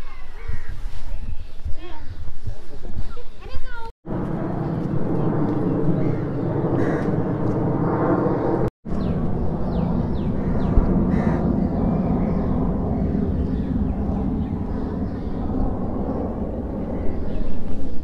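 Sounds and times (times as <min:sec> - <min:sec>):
outdoor background rumble: 0:03.6 - 0:18.0.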